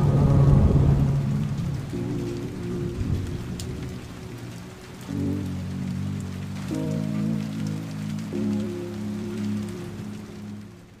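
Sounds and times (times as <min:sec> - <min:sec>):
rain patter: 0:00.0 - 0:11.0
slow lofi chords: 0:00.0 - 0:11.0.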